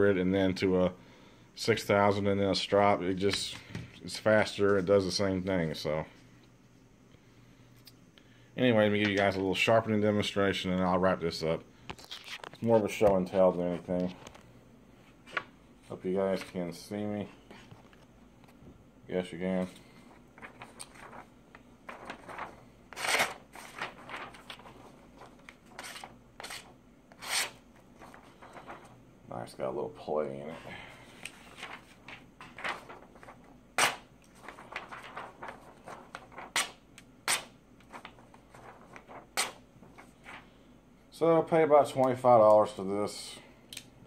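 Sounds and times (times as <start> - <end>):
blade slicing paper: 22.9 - 24.4.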